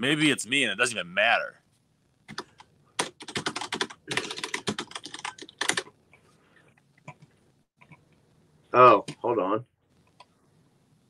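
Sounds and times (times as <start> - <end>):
typing on computer keyboard: 2.3 - 5.9.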